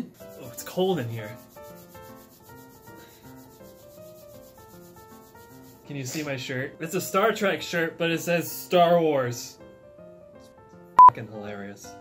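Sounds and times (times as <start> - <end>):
quiet background music: 0.0 - 12.0
hands rubbing on cotton shirt: 0.2 - 6.3.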